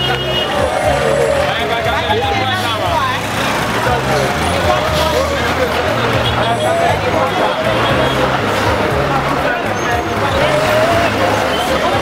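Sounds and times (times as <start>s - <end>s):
idling vehicle engines hum: 0.0s - 12.0s
voices talking and calling: 0.0s - 12.0s.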